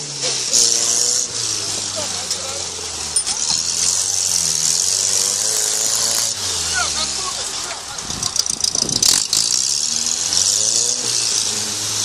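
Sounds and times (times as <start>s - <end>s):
off-road vehicle engine low revs: 0.0s - 12.0s
steady high hiss: 0.0s - 12.0s.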